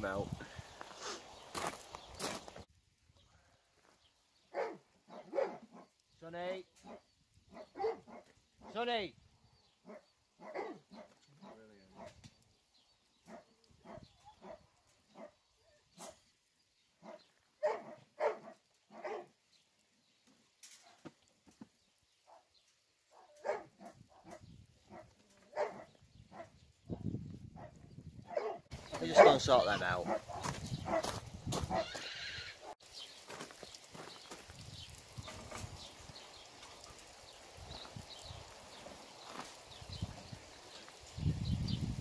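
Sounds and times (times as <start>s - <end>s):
dog barking: 4.5s - 5.8s, 6.8s - 8.3s, 9.9s - 12.2s, 13.3s - 15.4s, 17.0s - 19.3s, 23.1s - 26.5s, 27.6s - 31.9s.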